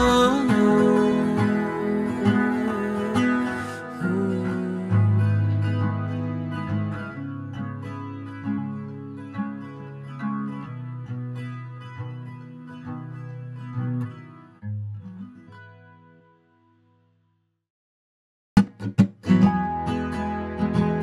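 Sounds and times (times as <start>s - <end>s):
acoustic guitar picking and strumming: 0.0s - 16.6s, 18.6s - 21.0s.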